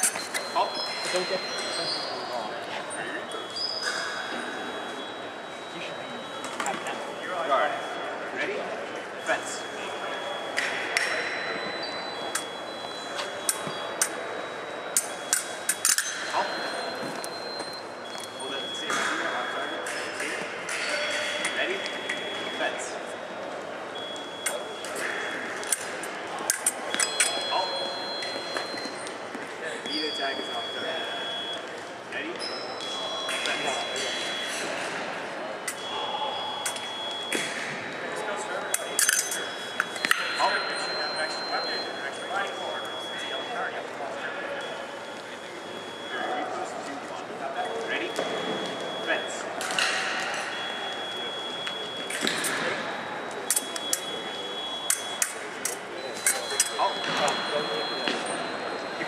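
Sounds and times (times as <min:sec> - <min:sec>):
crowd chatter in a hall: 0:00.0 - 0:59.0
scoring machine beeps: 0:00.0 - 0:59.0.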